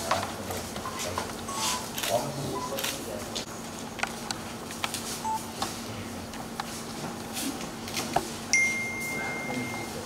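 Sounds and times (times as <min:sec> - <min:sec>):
camera shutters clicking: 0:01.9 - 0:02.2
short electronic beep: 0:08.6 - 0:10.0.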